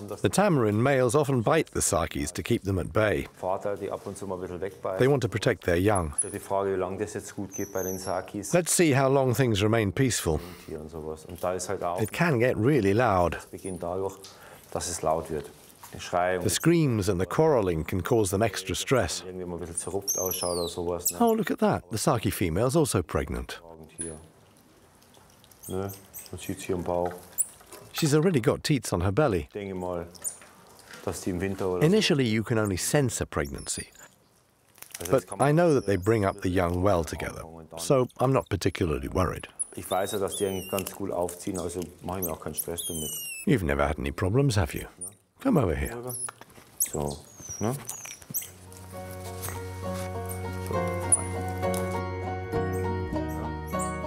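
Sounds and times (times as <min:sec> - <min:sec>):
monkey squeak: 0:06.1 - 0:06.5, 0:07.4 - 0:08.3, 0:19.7 - 0:21.4, 0:25.5 - 0:26.4, 0:27.3 - 0:27.6, 0:30.1 - 0:30.4, 0:35.6 - 0:36.6, 0:39.6 - 0:41.0, 0:41.6 - 0:43.5, 0:46.0 - 0:48.7, 0:50.2 - 0:51.7, 0:53.7 - 0:54.0
background music with steady bass: 0:48.6 - 0:54.0.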